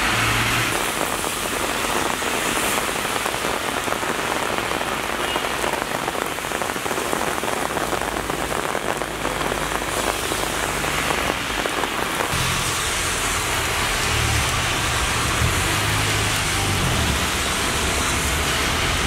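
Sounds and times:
heavy rain on asphalt: 0.0s - 19.0s.

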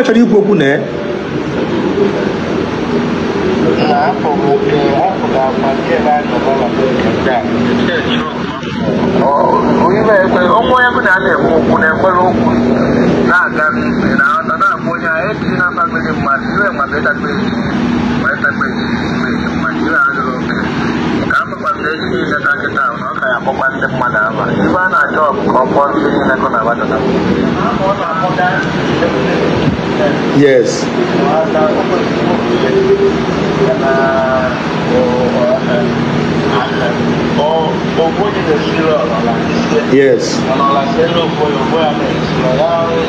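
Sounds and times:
person talking fast: 0.0s - 0.9s, 3.6s - 43.0s
steady low hum: 0.0s - 43.0s.

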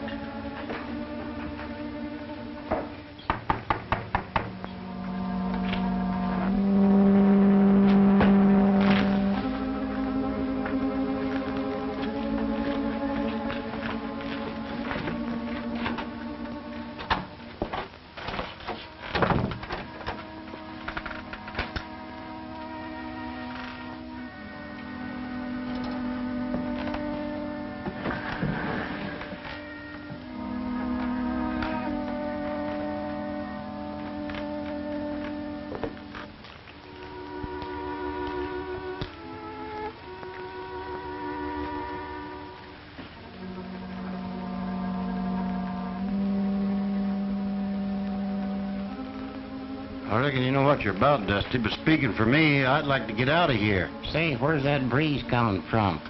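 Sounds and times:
orchestral film music: 0.0s - 56.0s
sharp knocks: 2.7s - 4.6s.

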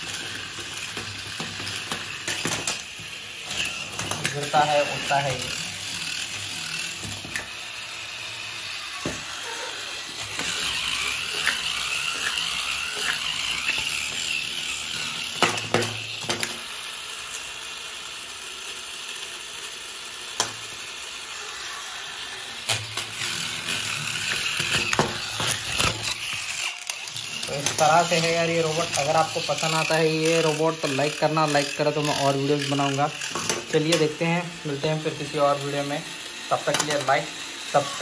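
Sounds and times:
toy motor whirring: 0.0s - 38.0s.

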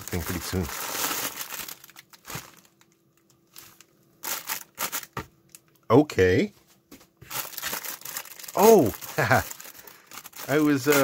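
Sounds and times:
plastic packaging crinkling: 0.0s - 5.7s, 7.2s - 11.0s.

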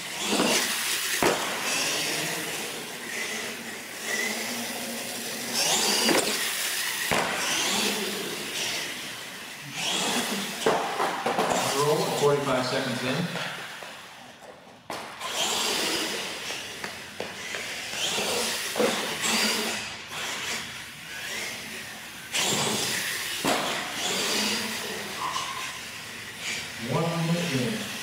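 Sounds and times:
tyre noise on concrete: 0.0s - 12.3s, 13.0s - 26.6s
electric motor whine: 0.0s - 14.0s, 15.2s - 28.0s.

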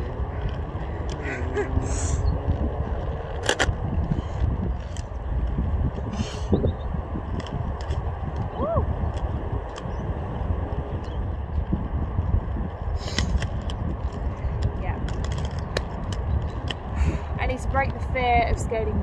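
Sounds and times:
roller skate wheels rolling: 0.0s - 19.0s.

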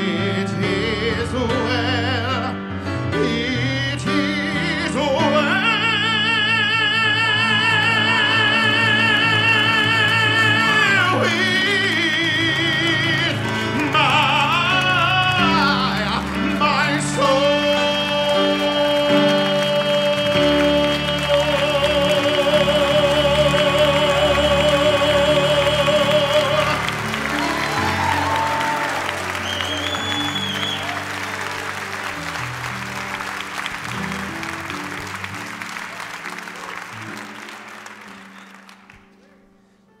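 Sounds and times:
man singing a long note: 0.0s - 31.0s
audience applause: 6.7s - 39.4s.

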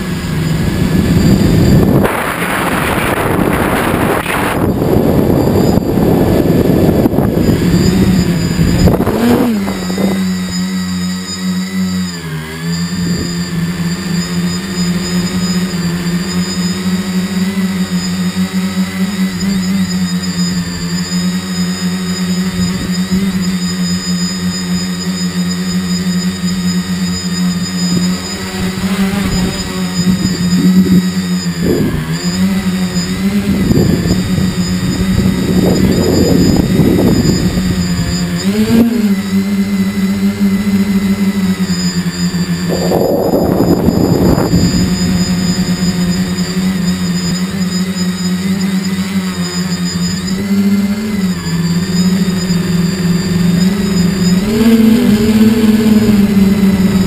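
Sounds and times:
drone motors buzzing: 0.0s - 57.0s
low rushing wind noise: 0.0s - 57.0s.

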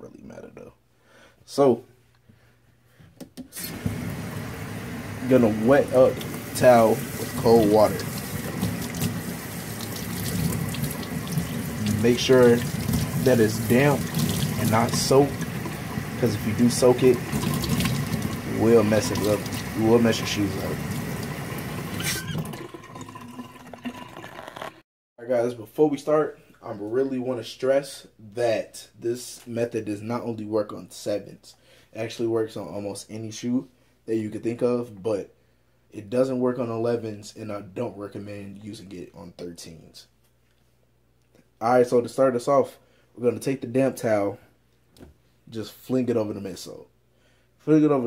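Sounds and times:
faucet water running into sink: 3.6s - 24.8s.

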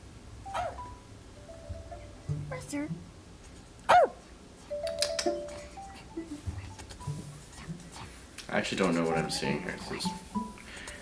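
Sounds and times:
held musical notes: 0.4s - 3.2s, 4.6s - 11.0s.

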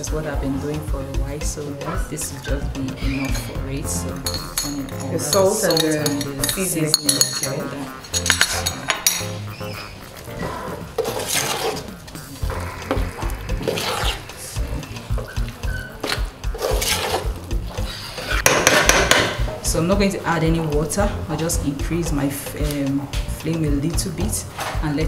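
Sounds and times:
metal spoon stirring stew in pot: 10.9s - 18.9s.

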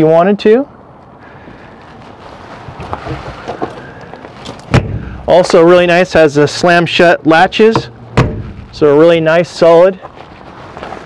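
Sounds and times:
compartment door slamming shut: 7.8s - 8.7s.

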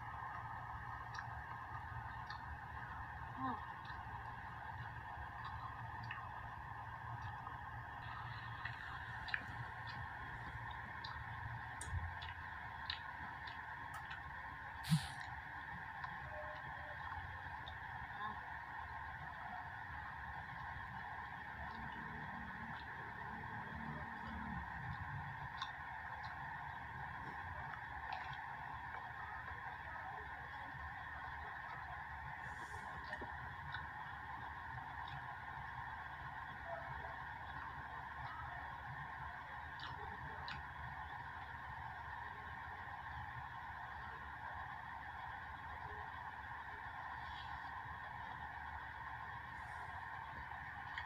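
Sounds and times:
droning background noise: 0.0s - 51.0s.

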